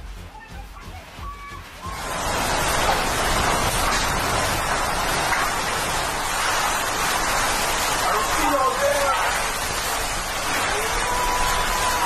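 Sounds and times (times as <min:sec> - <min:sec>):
driving rain: 0:00.0 - 0:12.0
hurricane wind: 0:01.0 - 0:12.0.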